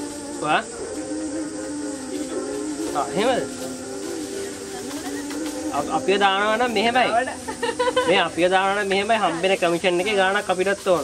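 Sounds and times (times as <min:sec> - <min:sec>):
person singing with vibrato: 0:00.0 - 0:06.8
faint steady hiss: 0:00.0 - 0:11.0
held accompanying notes: 0:00.0 - 0:11.0.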